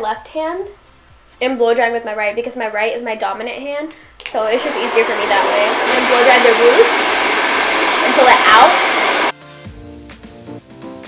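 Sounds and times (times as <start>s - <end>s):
hair dryer blowing: 4.2s - 9.4s.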